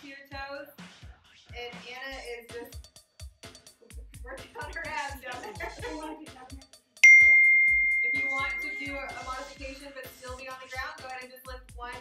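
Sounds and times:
bright bell ding: 7.0 - 9.2.

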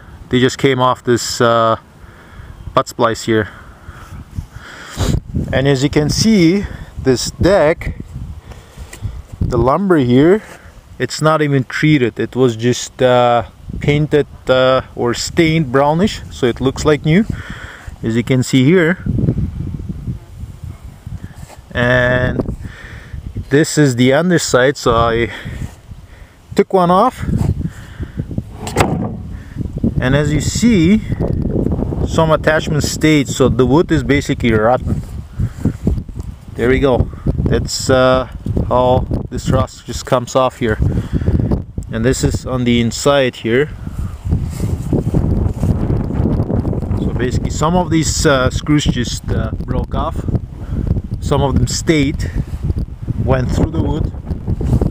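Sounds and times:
low rumbling microphone noise: 3.5 - 9.7, 27.2 - 39.6
wind buffeting microphone: 3.7 - 11.0, 15.3 - 18.2, 19.0 - 23.6, 27.2 - 40.0, 40.6 - 54.9.

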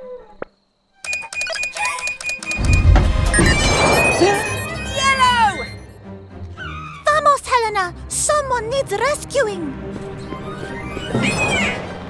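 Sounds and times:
fast ringing rattle of clicks: 1.1 - 2.9
steady high tone: 1.1 - 6.0
background music: 2.1 - 12.0.

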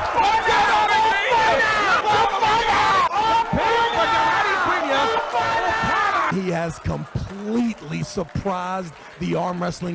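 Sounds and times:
man shouting: 0.0 - 6.5
crowd noise: 0.0 - 9.9.

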